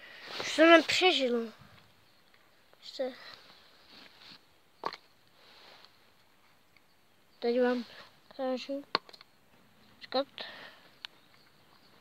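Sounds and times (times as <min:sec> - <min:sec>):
faint rustling: 0:00.0 - 0:04.6, 0:05.3 - 0:06.6.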